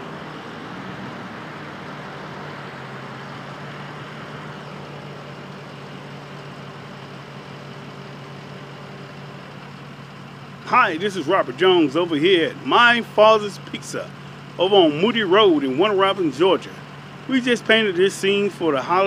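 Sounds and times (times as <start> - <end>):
low engine-like hum: 0.0 - 19.0
traffic noise: 0.0 - 19.0.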